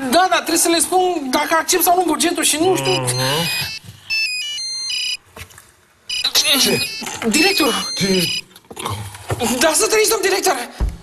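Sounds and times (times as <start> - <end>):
phone ringtone beeping melody: 2.8 - 5.2, 6.1 - 8.5.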